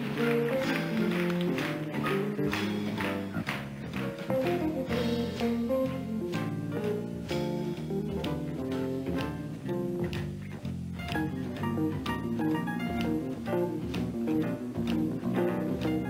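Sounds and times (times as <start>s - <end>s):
drums: 0.0s - 16.0s
electric guitar plucked notes: 0.0s - 16.0s
walking bass line: 0.0s - 16.0s.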